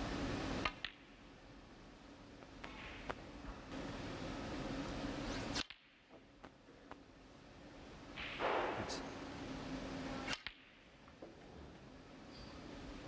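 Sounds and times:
balls colliding clicks: 0.6s - 1.2s, 2.4s - 3.6s, 5.6s - 7.1s, 8.1s - 9.0s, 10.2s - 11.5s.

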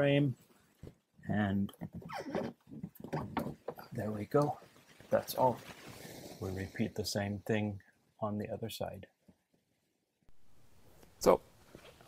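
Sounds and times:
pry bar squeaking: 2.0s - 2.6s.

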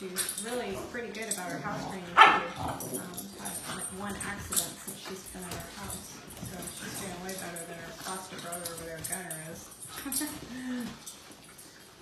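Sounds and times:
puppies play-wrestling: 0.0s - 12.0s.

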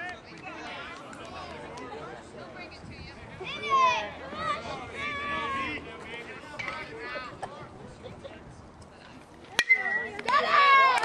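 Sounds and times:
faint crowd voices: 0.0s - 11.0s.

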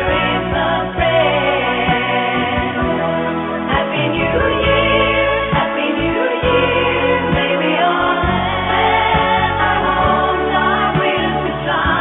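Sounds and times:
choir singing music: 0.0s - 12.0s.

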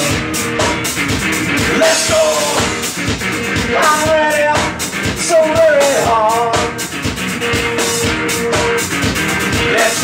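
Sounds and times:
blues-rock band playing: 0.0s - 10.0s
person singing: 1.7s - 2.9s, 3.6s - 6.9s, 9.6s - 10.0s.

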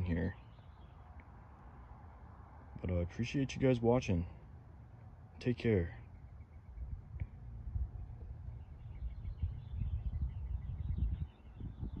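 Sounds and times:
faint bird chirping: 0.0s - 2.2s, 5.0s - 12.0s
wind rumble on microphone: 6.6s - 12.0s.

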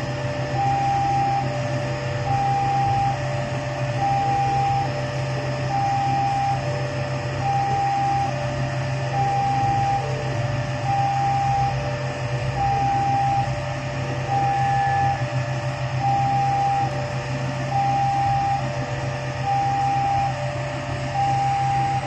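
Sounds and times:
level crossing two-tone alarm: 0.0s - 22.0s
locomotive engine humming: 0.0s - 22.0s.

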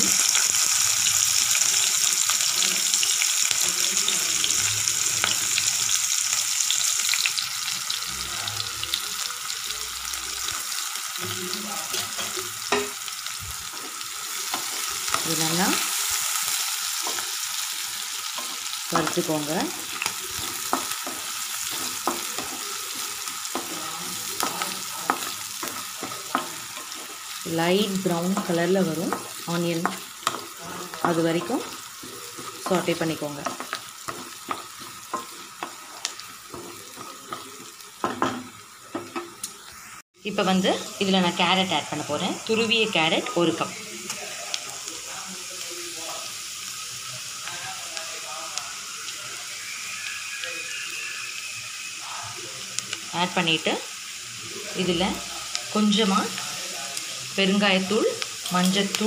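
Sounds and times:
onion sizzling in hot oil: 0.0s - 59.0s.

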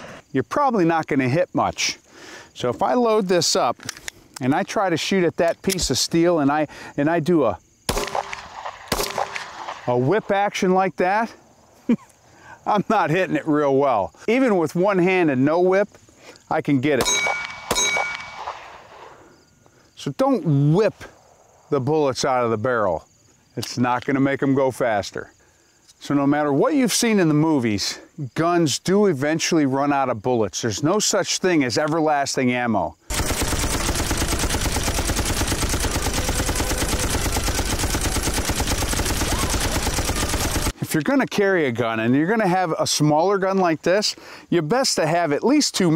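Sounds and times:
faint outdoor background: 0.0s - 45.9s
pistol shot: 7.9s - 10.0s, 17.0s - 19.2s
machine gun firing: 7.9s - 10.2s, 17.0s - 19.1s, 33.1s - 40.8s
steel target ringing: 17.0s - 18.7s.

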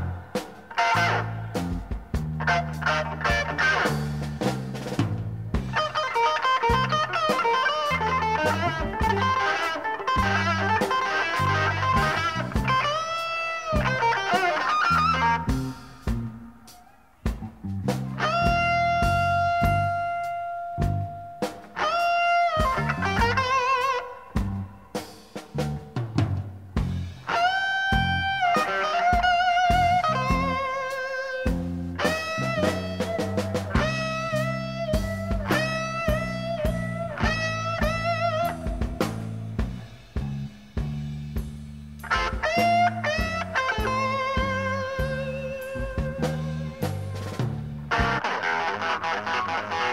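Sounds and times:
electric guitar solo: 0.0s - 4.3s, 5.7s - 25.0s, 27.2s - 39.7s, 42.0s - 49.9s
bass guitar: 0.0s - 49.9s
drums: 0.0s - 49.9s.

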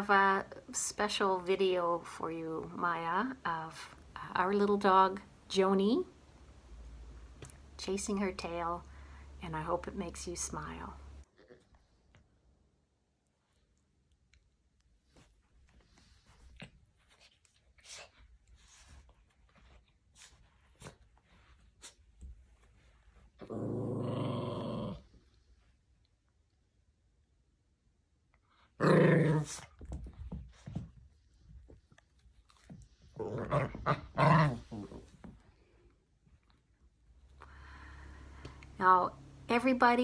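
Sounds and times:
dog rustling on a rug: 15.0s - 23.3s
small dog growling playfully: 23.4s - 25.1s, 28.8s - 29.7s, 33.2s - 35.1s.

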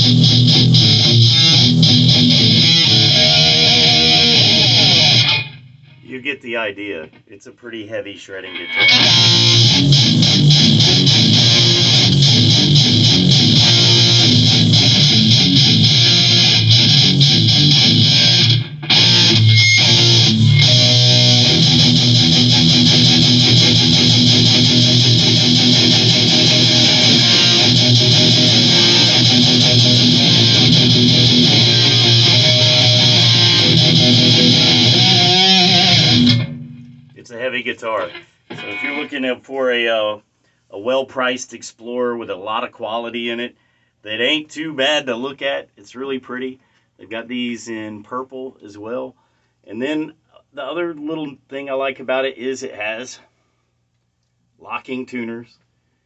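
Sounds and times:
heavy electric guitar riffs: 0.0s - 7.2s, 8.3s - 39.4s.

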